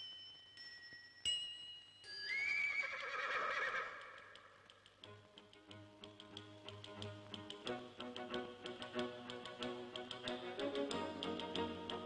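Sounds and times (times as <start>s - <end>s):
horse whinnying: 2.3s - 4.6s.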